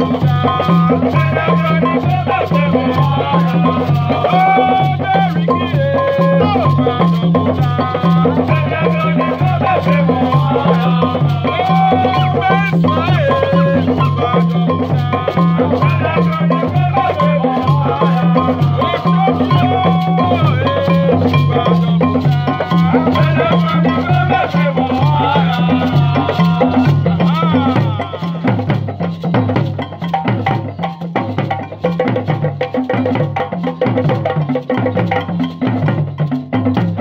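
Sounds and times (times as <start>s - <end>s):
people singing: 0.0s - 29.6s
djembe drums playing: 0.0s - 37.0s.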